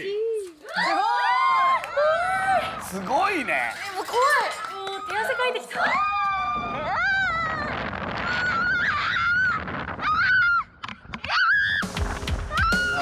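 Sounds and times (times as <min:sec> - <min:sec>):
music: 0:11.8 - 0:13.0.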